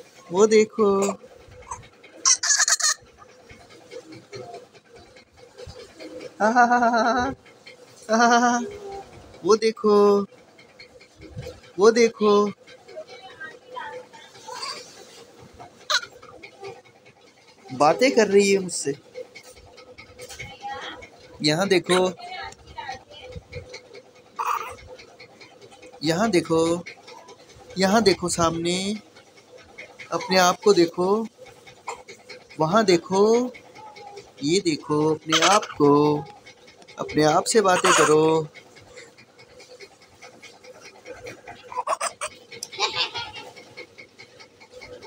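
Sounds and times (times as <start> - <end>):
baby vocalizing: 0.9 - 3.0, 24.4 - 24.9, 31.8 - 38.6, 41.2 - 43.6
baby breathy vocal sounds: 24.4 - 24.9, 37.4 - 39.2.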